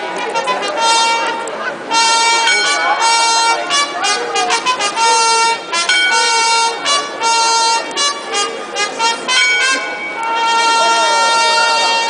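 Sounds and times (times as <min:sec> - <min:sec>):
brass instrument slow melody: 0:00.2 - 0:12.0.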